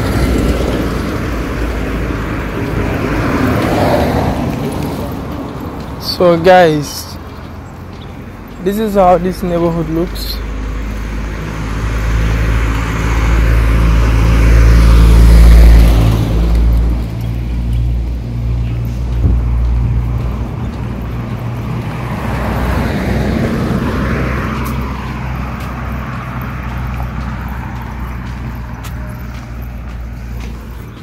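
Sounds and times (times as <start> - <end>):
steady traffic noise: 0.0 - 31.0
vehicle passing by: 0.0 - 31.0.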